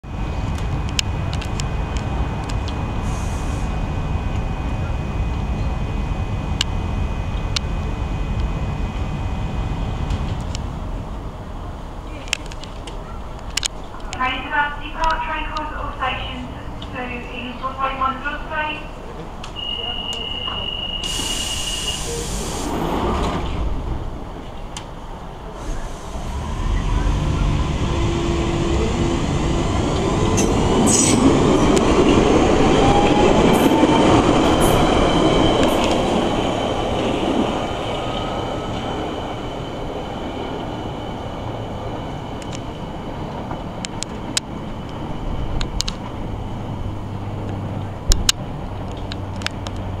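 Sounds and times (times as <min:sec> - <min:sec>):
train rumbling: 0:00.0 - 0:50.0
hiss: 0:21.0 - 0:22.8
rising motor whine: 0:25.8 - 0:30.4.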